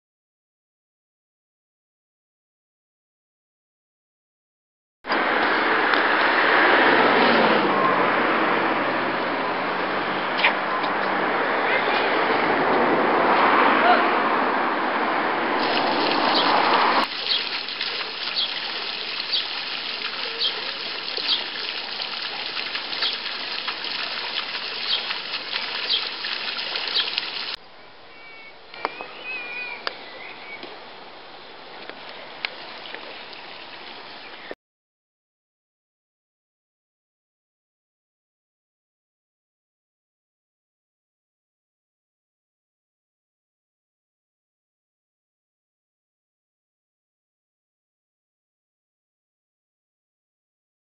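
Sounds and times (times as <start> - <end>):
fountain water splashing: 15.6 - 27.6, 31.9 - 34.5.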